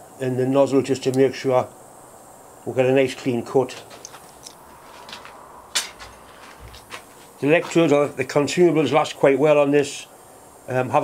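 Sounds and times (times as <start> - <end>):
metal parts clicking and clinking: 3.7 - 7.0.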